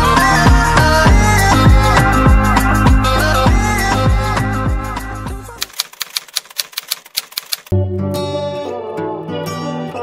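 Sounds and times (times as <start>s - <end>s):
typewriter key clicks: 5.6s - 7.7s.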